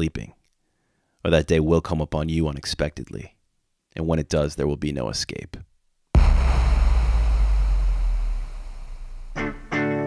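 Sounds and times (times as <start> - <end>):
deep low rumble: 6.2 - 9.6.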